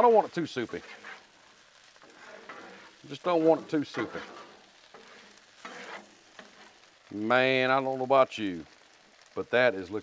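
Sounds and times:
food sizzling: 0.0 - 10.0
metal spatulas scraping griddle: 0.7 - 6.9.

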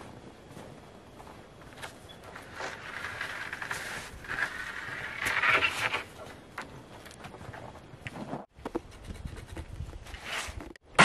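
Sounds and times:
wood panel scraping against others: 2.6 - 6.1.

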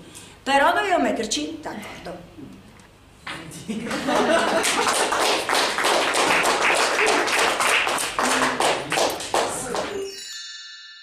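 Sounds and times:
audience clapping: 3.8 - 10.1.

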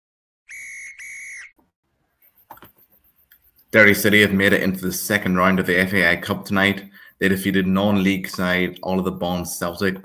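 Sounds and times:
referee's whistle blasts: 0.5 - 1.6.

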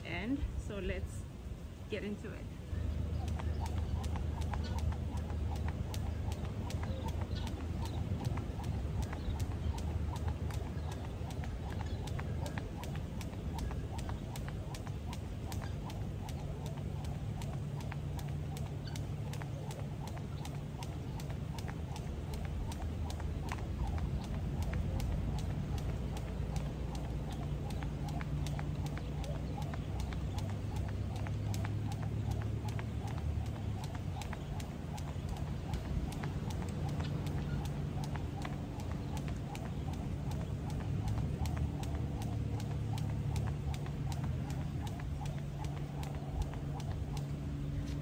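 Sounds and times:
low steady rumble: 0.0 - 48.0
skipping rope ticking on bricks: 2.0 - 48.0.

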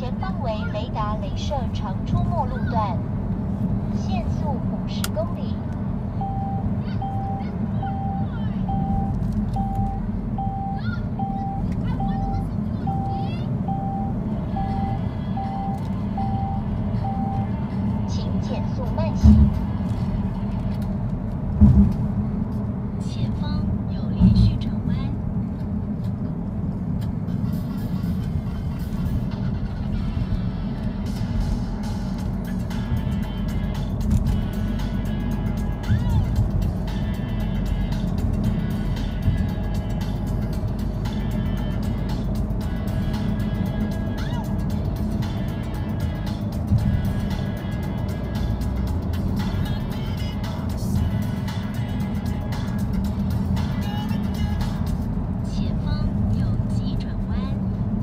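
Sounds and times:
engine and tyre rumble: 0.0 - 58.0
music playing: 10.7 - 20.9, 27.3 - 57.4.

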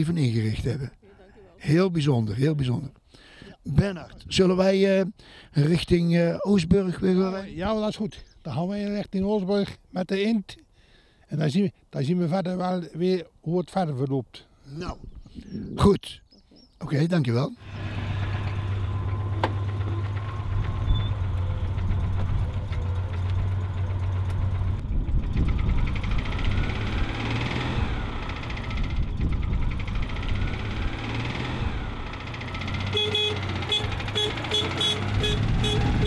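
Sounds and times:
car engine humming: 17.6 - 36.0
short car horn toots: 32.9 - 36.0.

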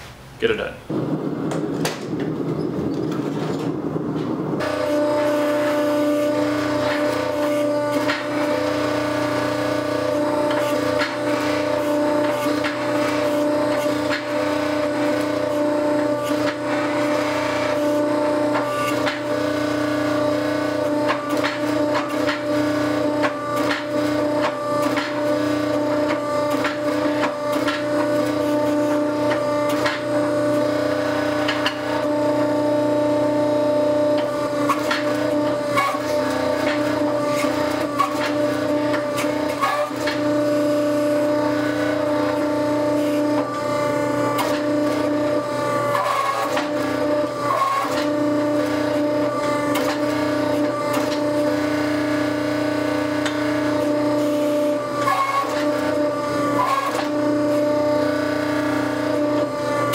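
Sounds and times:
hydraulic press humming: 0.0 - 59.9.

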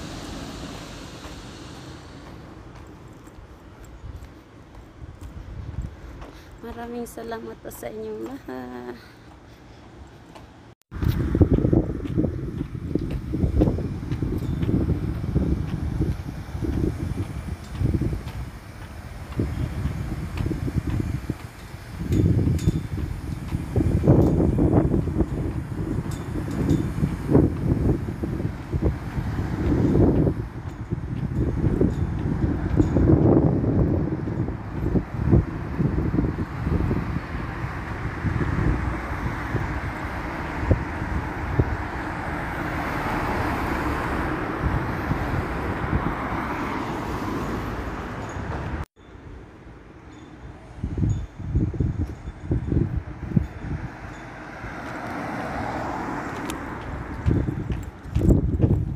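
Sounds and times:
passing vehicles rushing: 0.0 - 7.2, 9.9 - 48.9, 52.4 - 58.9
wind buffeting microphone: 0.0 - 58.9.

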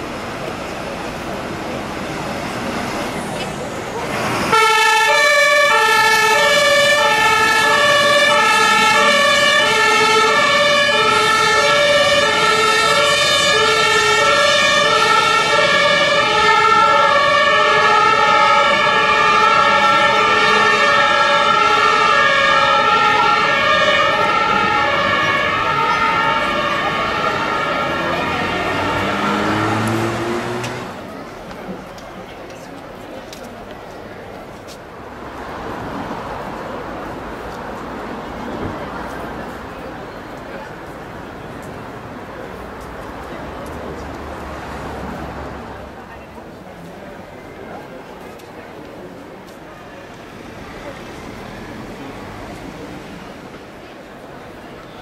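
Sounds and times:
two-tone fire engine sirens: 4.0 - 31.1
vehicle engine revving: 27.5 - 31.1.

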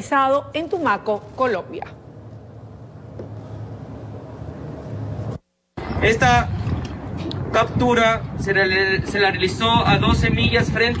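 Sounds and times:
boat engine humming: 1.2 - 6.0.

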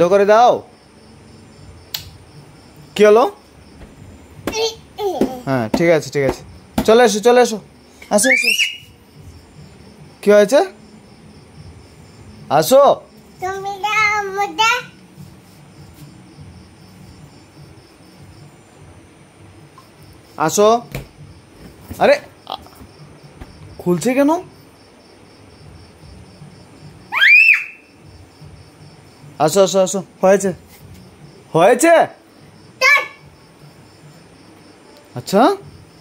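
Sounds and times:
small child squealing: 8.2 - 8.9, 27.1 - 27.9.

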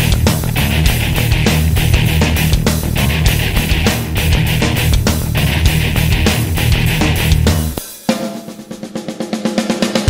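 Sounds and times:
rock band playing: 0.0 - 9.9
snare drum roll: 1.4 - 10.0.

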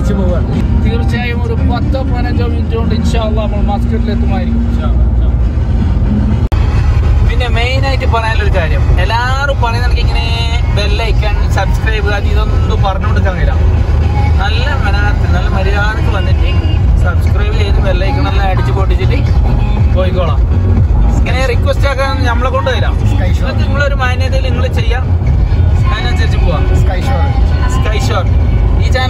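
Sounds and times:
man talking: 0.0 - 5.4, 7.2 - 13.7, 14.4 - 25.2, 25.8 - 29.0
vehicle engine and road noise: 0.0 - 29.0.

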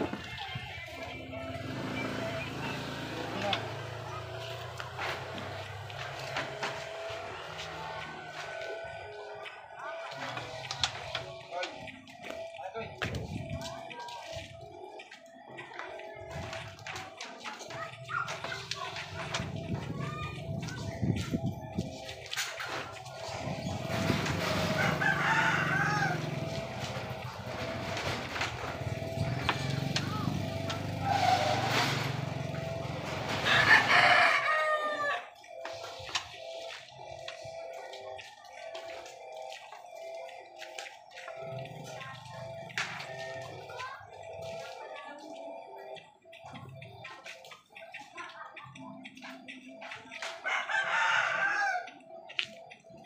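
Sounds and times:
rooster crowing: 24.8 - 26.4, 33.4 - 35.3, 50.4 - 52.0.

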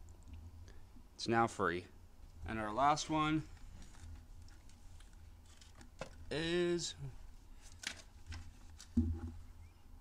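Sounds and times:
rustling handling noise: 2.2 - 9.7
dull thump: 9.0 - 9.4.

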